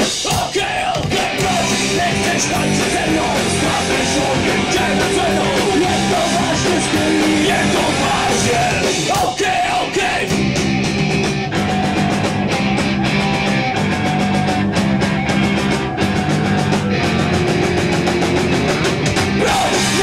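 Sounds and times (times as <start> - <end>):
distorted electric guitars: 0.0 - 20.0
fast drum beat: 0.0 - 20.0.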